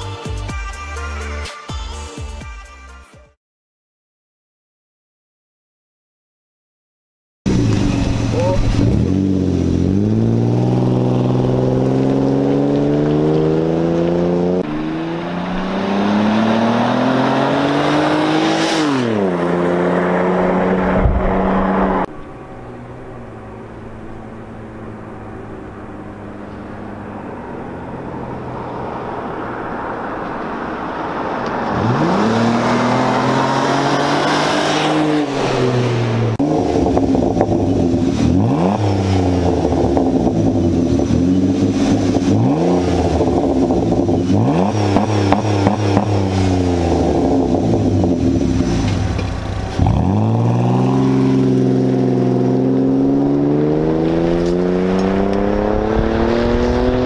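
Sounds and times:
engine exhaust revving: 7.5 - 57.0.

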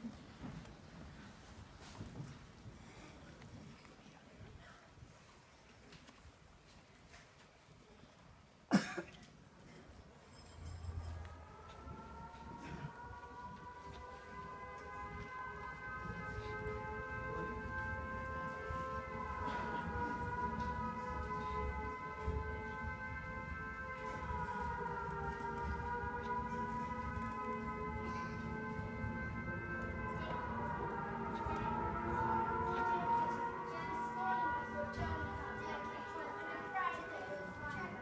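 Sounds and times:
person coughing: 8.7 - 9.3
sustained electronic chord: 10.4 - 38.0.

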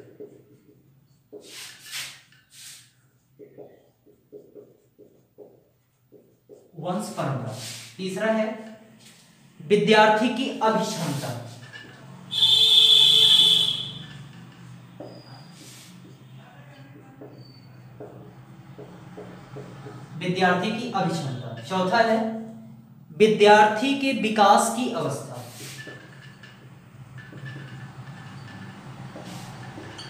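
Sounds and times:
marker pen on whiteboard: 0.0 - 30.0
marker squeaks: 15.0 - 16.4, 17.0 - 18.3.

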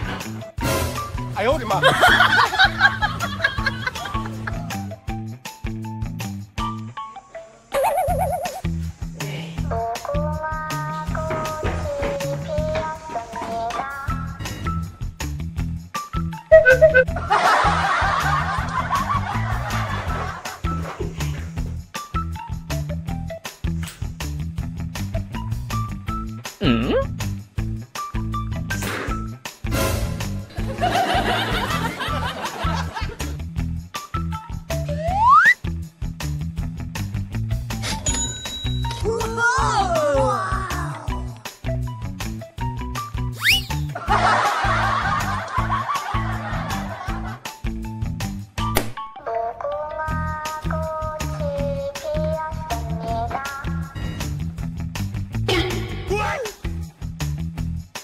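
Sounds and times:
background music with bass line: 0.0 - 7.1, 7.8 - 37.9, 39.0 - 49.0, 50.0 - 58.0
laughter: 1.8 - 4.8, 7.8 - 8.6, 16.6 - 20.6, 30.6 - 33.3, 44.0 - 47.5
music with bass beat: 14.1 - 23.2, 32.8 - 37.5.

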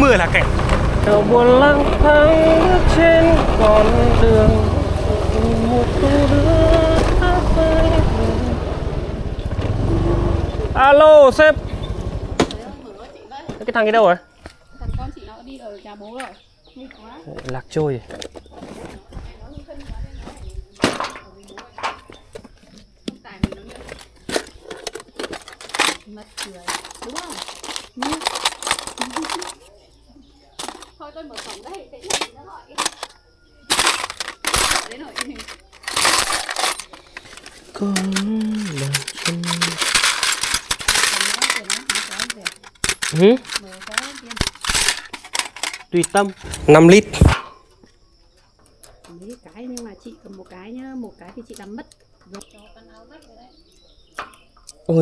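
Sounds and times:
rumbling handling noise: 0.0 - 13.0, 18.0 - 29.8, 30.5 - 47.5
keys clinking in metal tool box: 23.8 - 29.7, 30.6 - 47.4
faint voices: 25.8 - 44.5.

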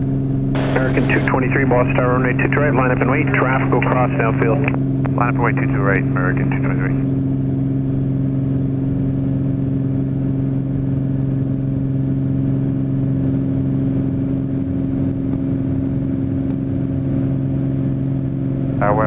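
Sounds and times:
airplane engine and propeller drone: 0.0 - 19.0.

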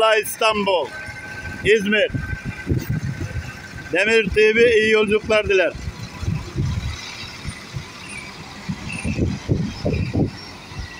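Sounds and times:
diesel engine running unevenly: 0.0 - 10.9.

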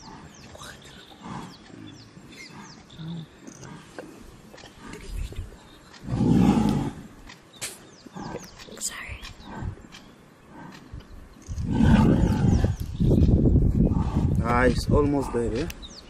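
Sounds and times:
birds chirping: 0.0 - 16.0
lions growling: 0.0 - 16.0.

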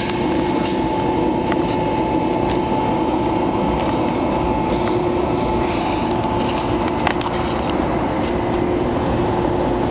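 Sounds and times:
machinery hum: 0.0 - 9.9.

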